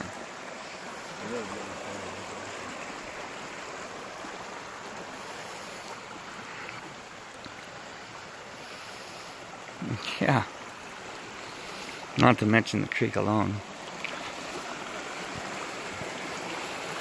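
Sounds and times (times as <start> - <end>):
creek trickling over rocks: 0.0 - 17.0.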